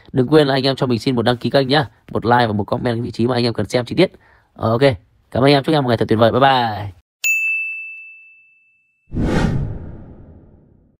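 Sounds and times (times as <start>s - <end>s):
bright ding: 7.2s - 9.1s
rushing whoosh: 9.1s - 10.9s.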